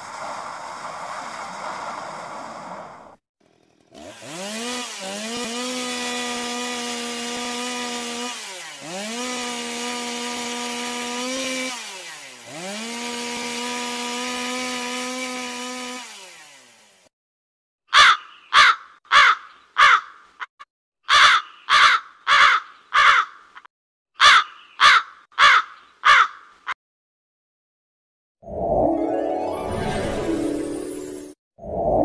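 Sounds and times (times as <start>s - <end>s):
chainsaw engine running: 3.4s - 17.1s
crow cawing: 17.9s - 20.2s, 21.0s - 26.5s.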